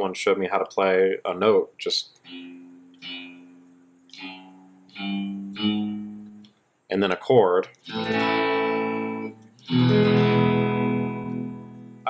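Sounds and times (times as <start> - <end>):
electric guitar single notes: 2.2 - 6.5, 7.7 - 12.0.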